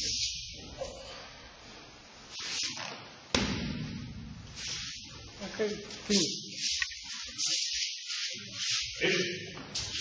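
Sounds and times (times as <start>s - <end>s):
slap on training mat: 3.3s - 4.0s.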